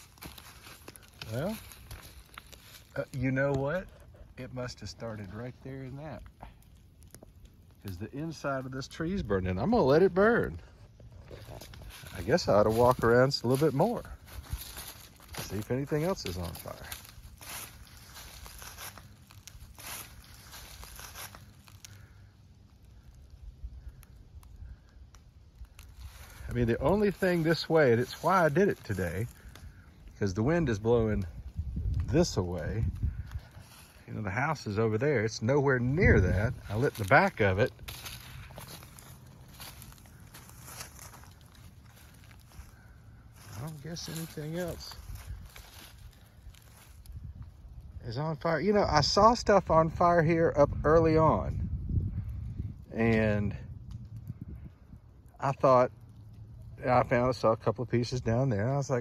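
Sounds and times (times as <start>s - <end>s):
footsteps crunching dry leaves: 0.0s - 3.8s, 10.1s - 22.1s, 25.8s - 31.4s, 32.1s - 34.6s, 35.6s - 47.4s
faint leaf rustles: 0.0s - 6.2s, 10.1s - 22.4s, 23.0s - 47.4s.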